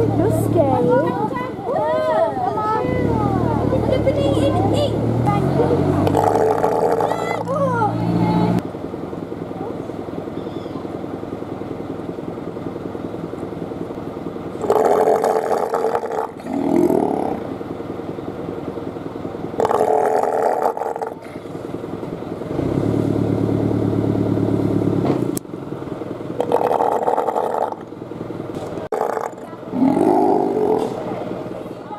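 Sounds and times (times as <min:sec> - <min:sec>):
sea lions roaring: 0:06.0 - 0:07.6, 0:14.6 - 0:17.4, 0:19.6 - 0:21.4, 0:26.4 - 0:27.8, 0:28.9 - 0:31.1.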